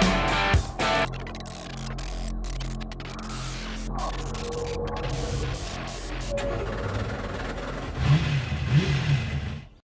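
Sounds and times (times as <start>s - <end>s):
car engine revving: 3.0s - 9.8s.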